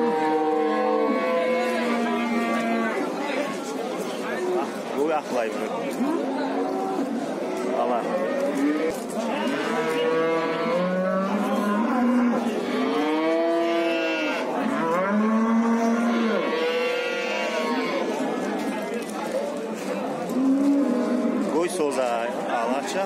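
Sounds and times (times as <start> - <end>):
cattle mooing: 0.0 - 3.0, 8.1 - 18.2.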